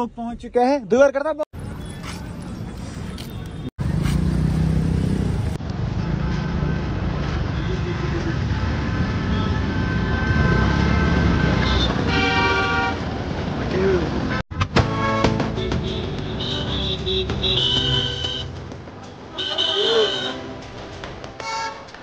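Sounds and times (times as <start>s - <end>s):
traffic rumble: 1.5s - 22.0s
car horn: 9.1s - 13.2s, 14.8s - 18.6s, 19.3s - 20.5s, 21.4s - 21.9s.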